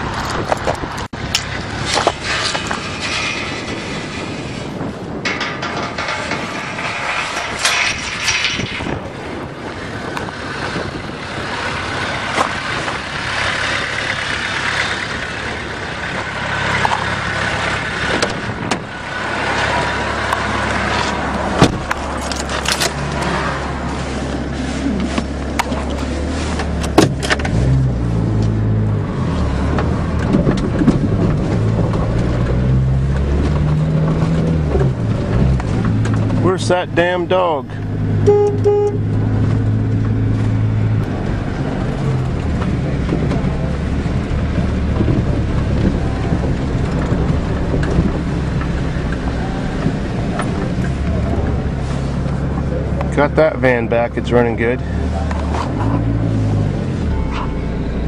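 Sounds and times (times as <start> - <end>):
tyre and body rumble: 0.0 - 38.1, 39.1 - 57.5
engine note: 32.5 - 58.0.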